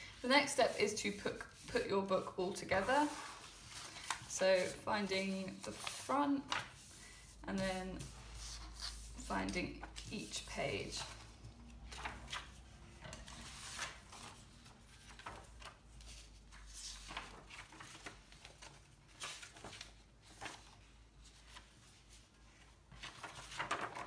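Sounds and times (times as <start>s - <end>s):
paper rustling and sliding: 0.1s - 24.0s.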